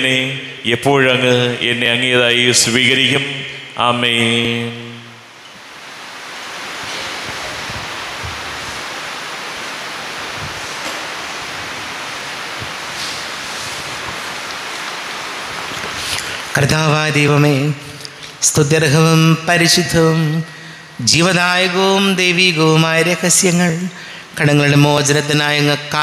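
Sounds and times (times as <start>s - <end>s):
sung amen: 0.0s - 5.3s, 16.0s - 26.0s
room background hiss: 0.0s - 26.0s.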